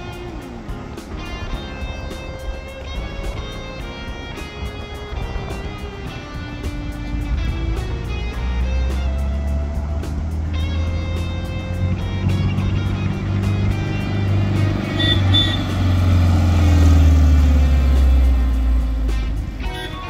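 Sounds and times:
car engine running: 0:00.0 - 0:19.8
background music: 0:00.0 - 0:20.0.

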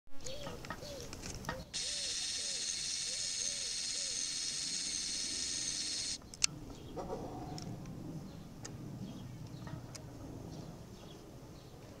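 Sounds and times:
bird calling: 0:00.2 - 0:06.2
camcorder zoom motor whirring: 0:01.8 - 0:06.2.

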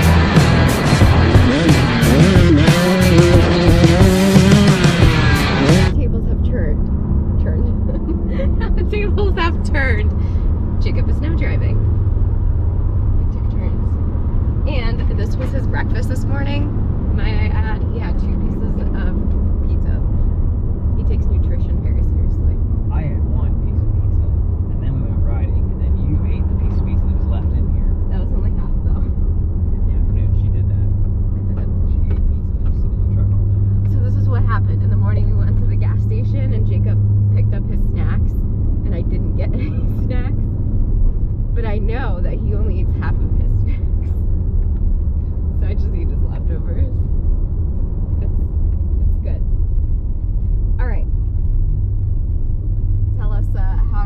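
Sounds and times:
road noise: 0:00.0 - 0:54.0
truck engine drone: 0:00.0 - 0:54.0.

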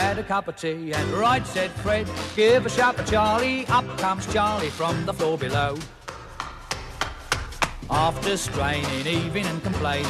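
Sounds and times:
person singing comic song: 0:07.9 - 0:10.0.

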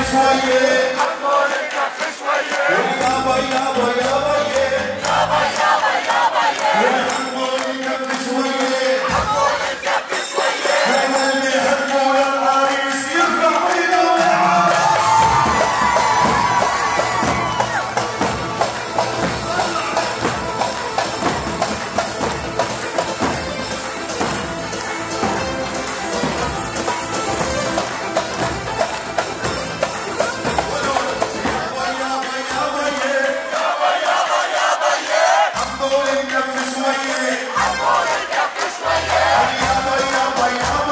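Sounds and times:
crowd cheering: 0:00.0 - 0:40.9
drums: 0:13.0 - 0:33.2, 0:38.8 - 0:40.9.

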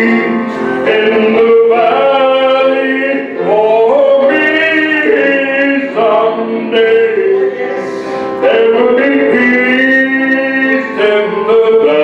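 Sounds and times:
instrumental accompaniment: 0:00.0 - 0:12.0
man singing: 0:00.0 - 0:12.0.

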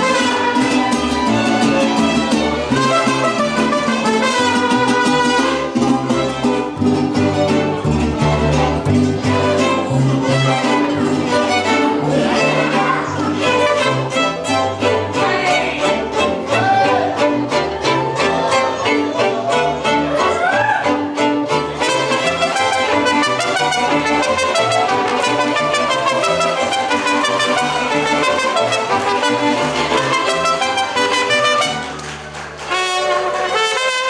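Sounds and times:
trumpet: 0:00.0 - 0:07.6, 0:19.4 - 0:34.0
strummed guitars: 0:00.0 - 0:34.0
violins playing melody: 0:00.0 - 0:34.0.

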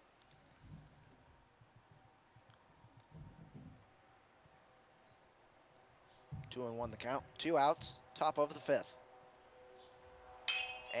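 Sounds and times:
metal bat hitting ball: 0:10.4 - 0:11.0.

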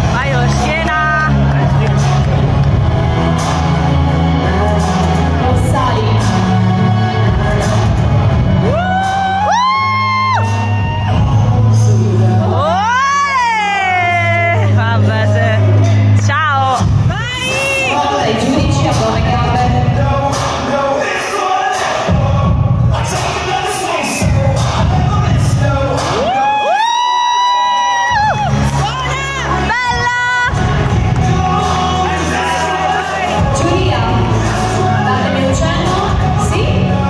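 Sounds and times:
loud music with heavy bass: 0:00.0 - 0:37.0
spectators yelling cheers: 0:26.1 - 0:33.5.

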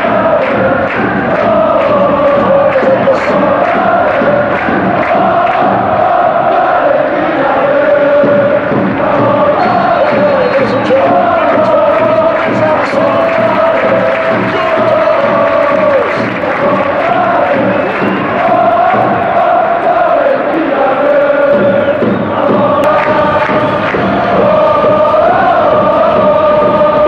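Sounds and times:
stadium crowd chanting: 0:00.0 - 0:27.0.

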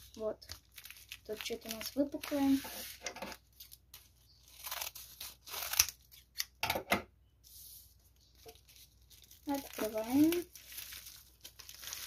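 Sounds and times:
plastic bag crinkling and tearing: 0:00.0 - 0:06.4, 0:08.3 - 0:12.0.

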